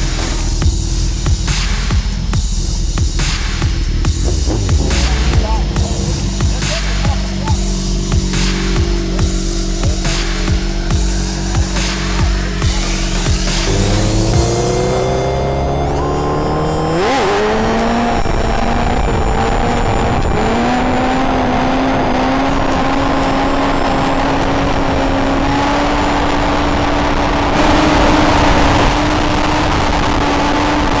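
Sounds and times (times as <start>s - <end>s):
motorcycle engine accelerating: 0.0s - 31.0s.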